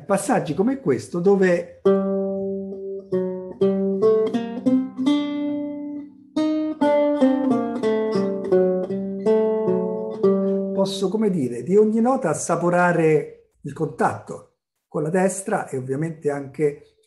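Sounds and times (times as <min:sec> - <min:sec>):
lute plucked notes: 0:00.0 - 0:13.5.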